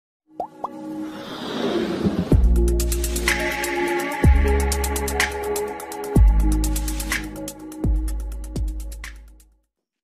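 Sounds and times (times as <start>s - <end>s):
music build-up: 0.5s - 9.0s.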